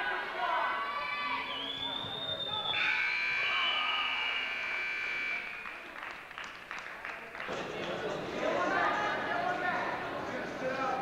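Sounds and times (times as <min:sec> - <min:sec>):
scoreboard buzzer long tone: 0:02.7 - 0:05.7.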